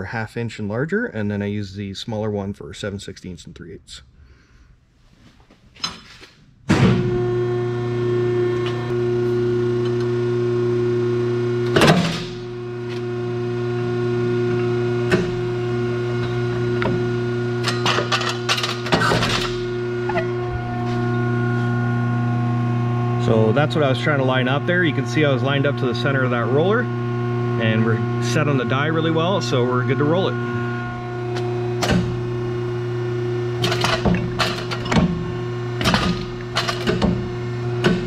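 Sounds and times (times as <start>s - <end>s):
hydraulic pump humming: 6.7s - 38.0s
metallic clanks and clatters: 17.6s - 20.3s, 33.6s - 38.0s.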